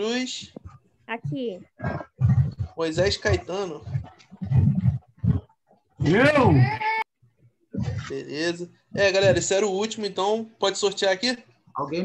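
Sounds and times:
man's voice over video call: 0.0 - 0.6, 2.8 - 4.0, 6.0 - 6.7, 7.8 - 12.0.

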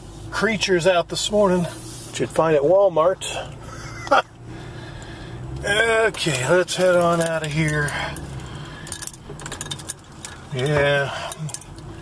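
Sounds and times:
low car rumble: 0.0 - 12.0
light metallic clicks and clinks: 6.8 - 11.9.

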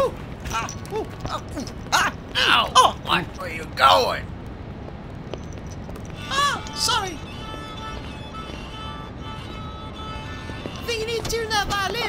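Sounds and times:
violin playing held notes: 6.1 - 12.0.

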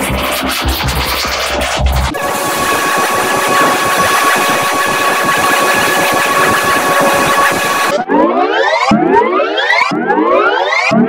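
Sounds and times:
distorted crackling noise: 0.0 - 8.0
steady high tone: 0.0 - 8.5.

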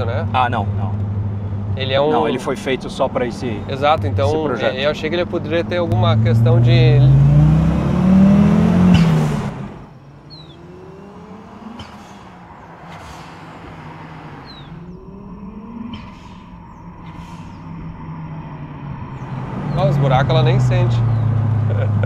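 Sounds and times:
car engine accelerating: 0.0 - 22.0
distant car engine approaching: 0.0 - 22.0.

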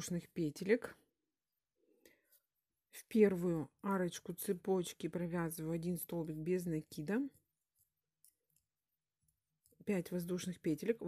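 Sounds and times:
woman speaking: 0.0 - 1.1, 2.9 - 7.4, 9.8 - 11.0.

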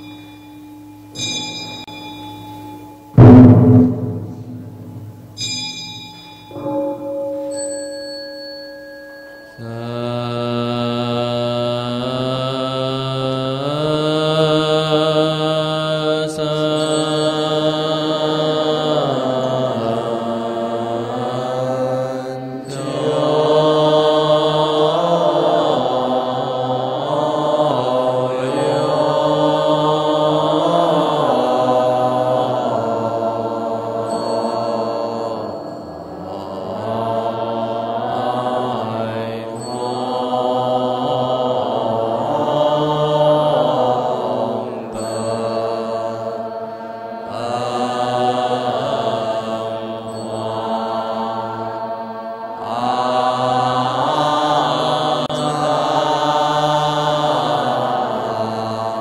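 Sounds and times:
monks chanting in unison: 9.4 - 59.0.

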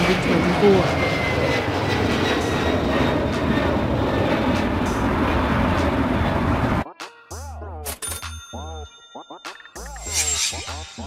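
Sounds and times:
jet engines roaring: 0.0 - 6.8.

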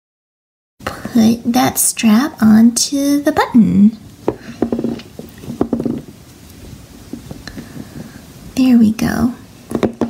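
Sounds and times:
fingers rubbing yarn: 4.4 - 6.2.

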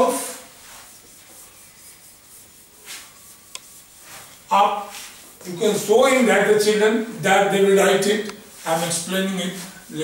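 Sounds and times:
chalk scratching on blackboard: 0.1 - 6.7, 7.5 - 10.0.

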